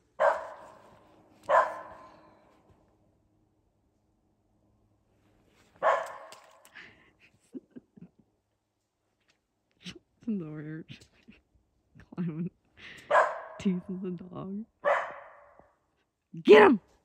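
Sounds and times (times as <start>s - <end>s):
dog barking: 0.1s - 2.2s, 5.8s - 6.4s, 13.1s - 13.6s, 14.8s - 15.7s.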